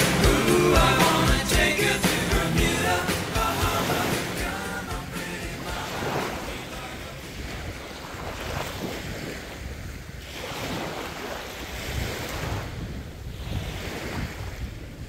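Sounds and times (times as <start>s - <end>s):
sea water sloshing: 3.1s - 14.8s.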